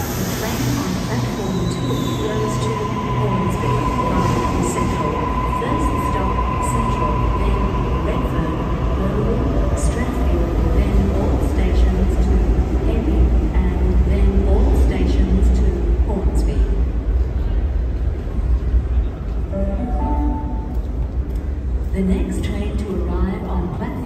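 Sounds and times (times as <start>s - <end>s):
electric train rumble and wheel noise: 0.0s - 24.0s.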